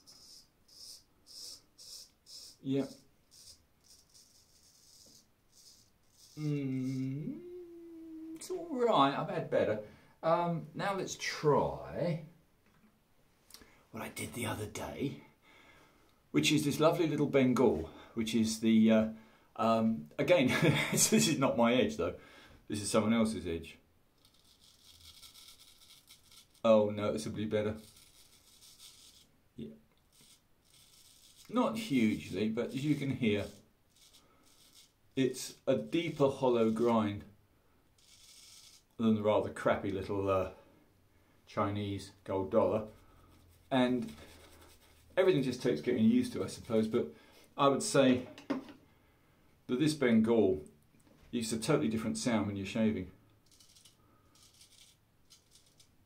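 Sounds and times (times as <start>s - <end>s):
straight razor scraping stubble: 0.0s - 7.0s, 24.2s - 26.7s, 27.6s - 29.3s, 30.0s - 36.9s, 38.0s - 39.0s, 53.4s - 56.0s.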